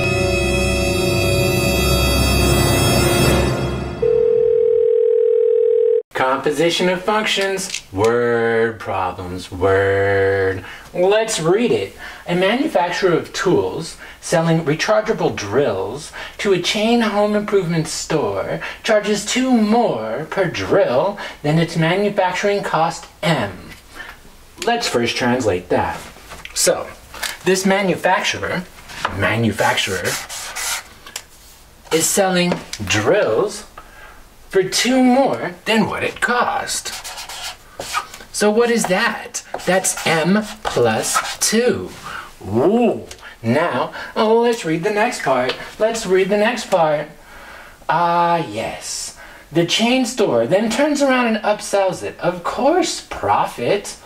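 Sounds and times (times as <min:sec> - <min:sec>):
marker pen scratching on board: 0:29.9 - 0:30.9, 0:36.8 - 0:38.2, 0:39.5 - 0:41.6.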